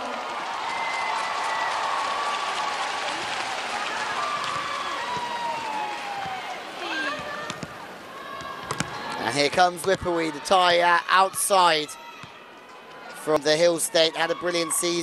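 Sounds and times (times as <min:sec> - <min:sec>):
crowd applauding and cheering: 0:00.0 - 0:06.8.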